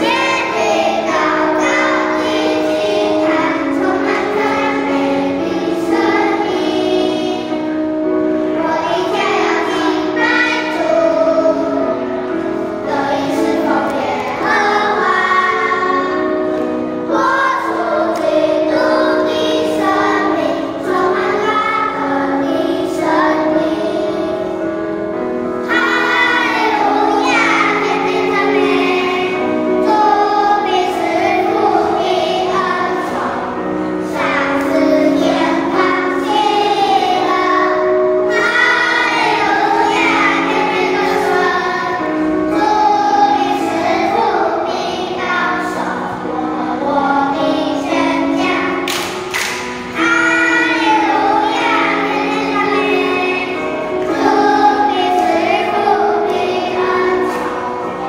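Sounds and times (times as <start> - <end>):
children's choir singing a hymn: 0.0 - 58.0.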